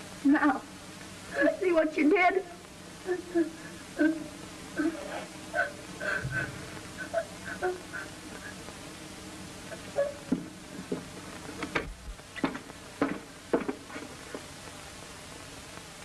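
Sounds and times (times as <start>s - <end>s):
film soundtrack buzzing hiss: 0.0s - 16.0s.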